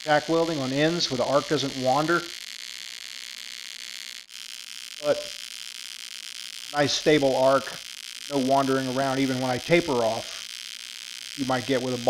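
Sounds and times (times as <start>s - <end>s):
welding arc buzzing hiss: 0.0s - 12.0s.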